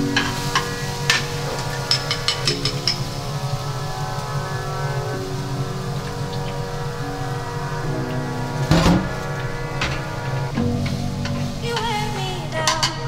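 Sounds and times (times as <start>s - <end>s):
loud burst of noise: 0.0s - 12.8s
music of sustained chords: 0.0s - 13.0s.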